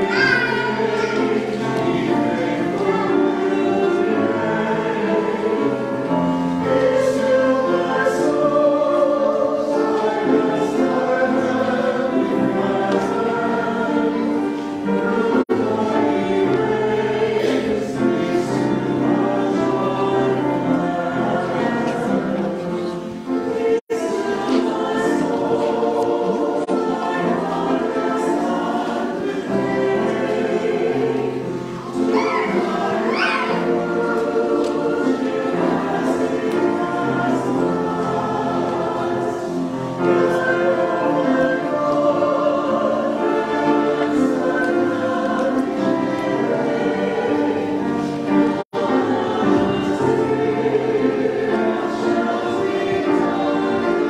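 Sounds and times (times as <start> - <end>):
choir singing sustained chords: 0.0 - 54.0.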